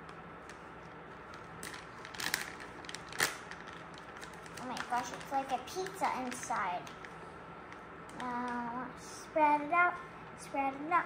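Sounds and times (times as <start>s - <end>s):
plastic bag crinkling: 1.2s - 7.2s.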